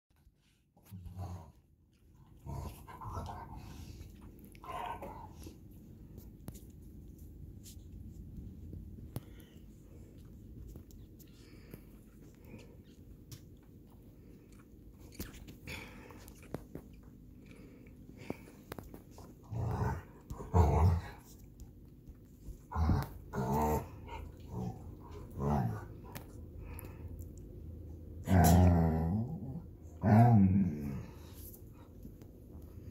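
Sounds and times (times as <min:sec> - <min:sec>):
dog growling: 0:00.9 - 0:05.4, 0:19.4 - 0:21.3, 0:22.7 - 0:26.9, 0:28.2 - 0:31.3.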